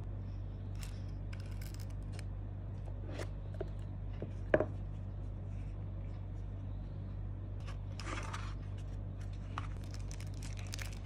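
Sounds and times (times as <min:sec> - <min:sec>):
low hum: 0:00.0 - 0:11.0
cardboard scraping: 0:07.7 - 0:10.6.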